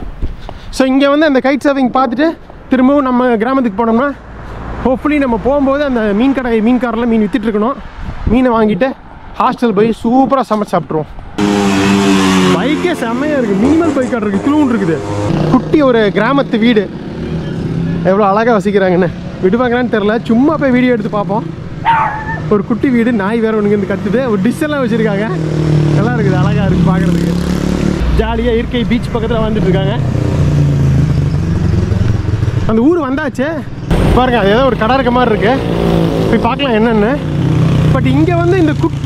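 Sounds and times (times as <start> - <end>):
people talking: 4.9 - 11.1, 12.5 - 16.9, 18.1 - 21.4, 26.0 - 27.4, 28.1 - 30.0, 32.7 - 37.3, 37.9 - 39.0.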